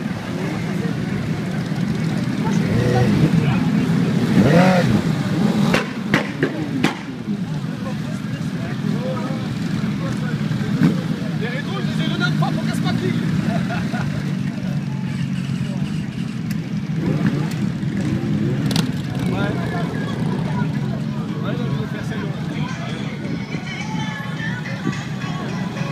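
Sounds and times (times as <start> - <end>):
people talking: 0.0 - 16.4, 17.0 - 25.9
motorcycle engines rumbling: 0.0 - 25.9.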